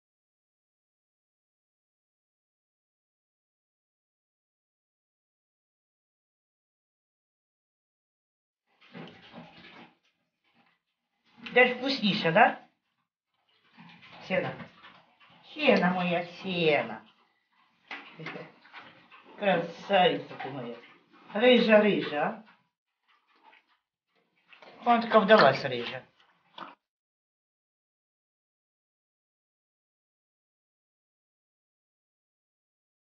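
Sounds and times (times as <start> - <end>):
calf slurping water: 8.7 - 26.9.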